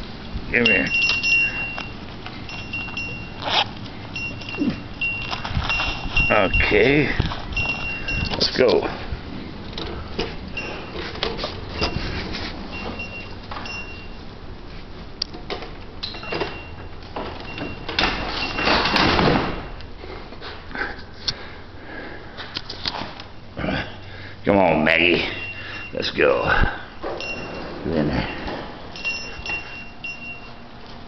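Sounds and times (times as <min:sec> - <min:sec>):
dog collar bell jingling: 0:00.6 - 0:08.9, 0:12.7 - 0:14.2, 0:27.0 - 0:30.8
wheelchair rolling and rattling: 0:00.9 - 0:20.6, 0:27.0 - 0:31.0.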